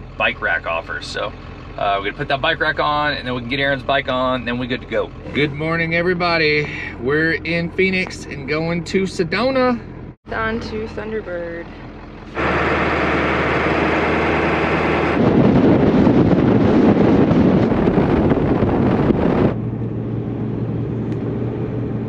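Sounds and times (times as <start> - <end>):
truck engine drone: 0.0 - 22.0
wind and road noise rush: 9.9 - 22.0.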